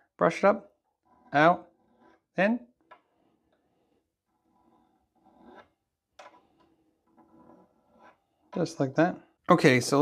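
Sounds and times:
file scraping: 0:01.0 - 0:08.7.

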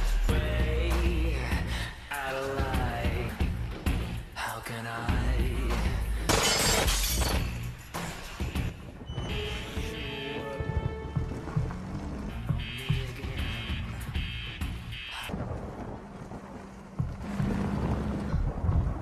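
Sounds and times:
dramatic score music: 0:07.4 - 0:19.0.

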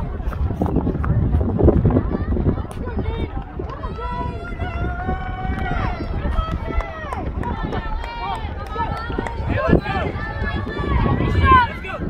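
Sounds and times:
wind rumbling on microphone: 0:00.0 - 0:12.0
spectators shouting and cheering: 0:02.0 - 0:12.0.

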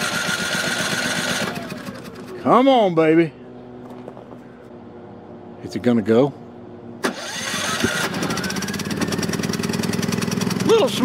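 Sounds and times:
generator engine starting and running: 0:00.0 - 0:04.6, 0:06.6 - 0:11.0.

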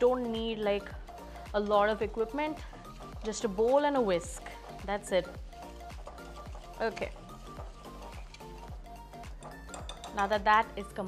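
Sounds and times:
background music with steady beat: 0:00.0 - 0:11.0
whisk scraping glass bowl: 0:02.8 - 0:10.2.

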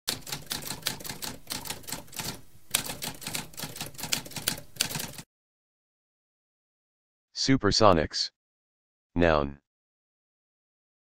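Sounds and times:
typewriter keys clicking: 0:00.1 - 0:05.2.

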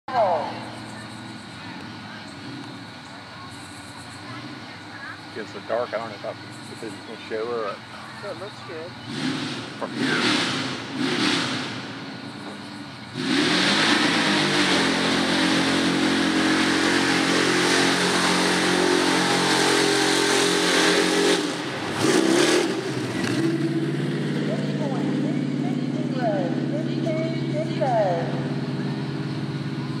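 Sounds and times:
truck engine at high revs: 0:00.1 - 0:30.0.

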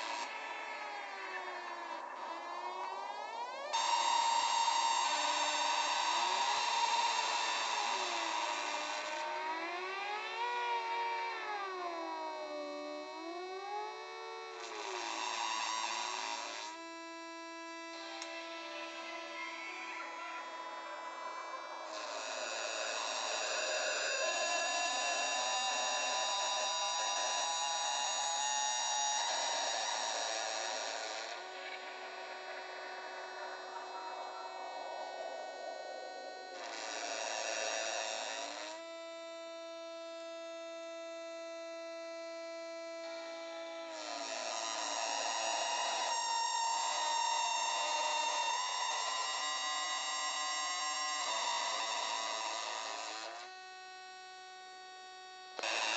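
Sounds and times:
buzzy synthesizer drones: 0:31.0 - 0:36.9.

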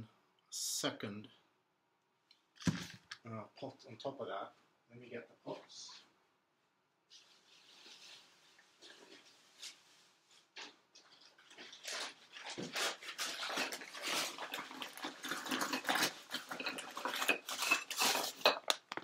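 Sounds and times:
flower pots clattering together: 0:11.1 - 0:19.0.

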